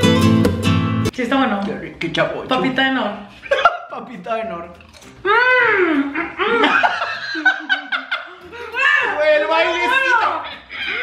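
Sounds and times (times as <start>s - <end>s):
man and woman laughing: 3.4s - 3.9s, 5.4s - 11.0s.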